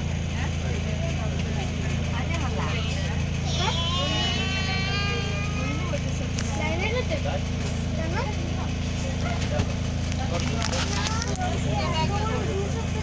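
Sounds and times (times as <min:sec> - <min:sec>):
bus engine idling: 0:00.0 - 0:13.0
passengers chattering: 0:00.0 - 0:13.0.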